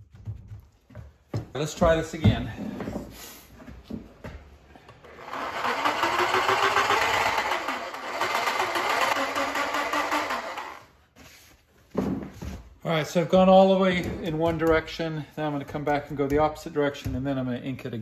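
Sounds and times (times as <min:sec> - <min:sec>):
reciprocating saw scraping metal: 0:05.1 - 0:10.9.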